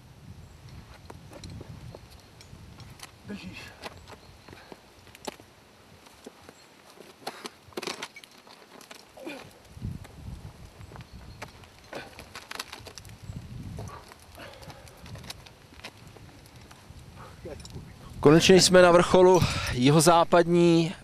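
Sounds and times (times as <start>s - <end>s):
wind rumble on microphone: 0.0s - 5.2s, 9.5s - 20.5s
climbing shoes scraping on rock: 0.8s - 17.8s.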